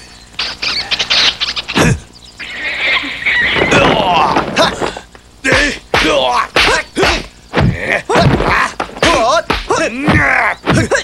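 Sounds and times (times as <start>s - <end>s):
fighters yelling shrilly: 3.6s - 11.0s.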